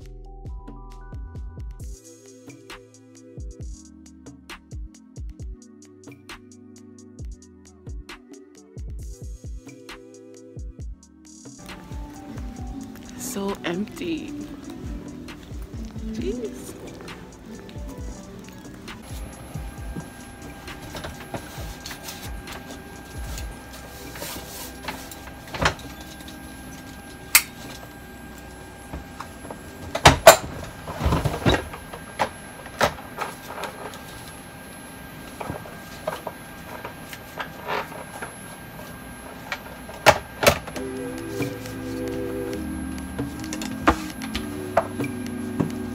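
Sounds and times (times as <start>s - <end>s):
electrical hum: 11.6s - 45.9s.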